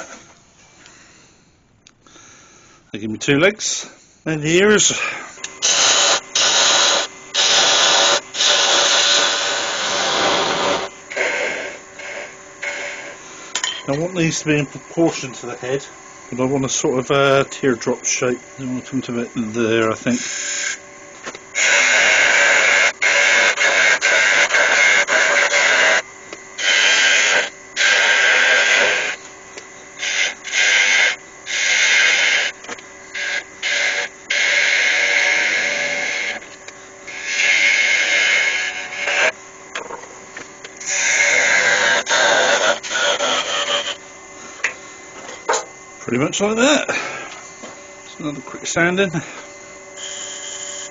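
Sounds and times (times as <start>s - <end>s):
lathe humming: 3.2s - 50.9s
gouge cutting wood on lathe: 5.4s - 13.2s, 16.4s - 20.8s, 21.6s - 26.0s, 26.6s - 29.2s, 30.0s - 36.5s, 37.1s - 39.4s, 40.8s - 44.0s.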